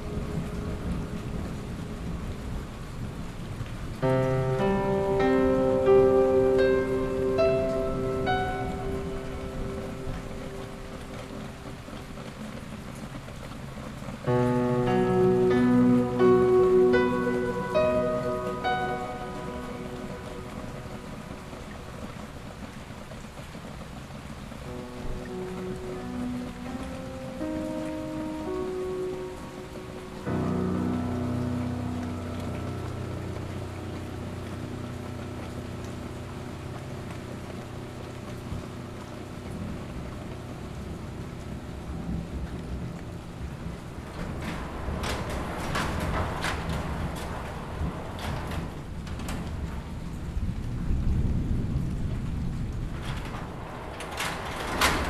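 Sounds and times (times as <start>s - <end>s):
low rumble of thunder: 0.0s - 55.0s
recorded rain patter: 0.0s - 55.0s
digital piano playing: 4.0s - 12.2s, 14.2s - 22.6s, 24.6s - 46.2s.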